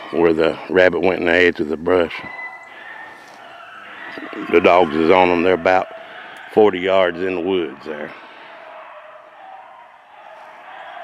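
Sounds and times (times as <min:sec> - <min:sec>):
distant hounds baying: 0:00.0 - 0:11.0.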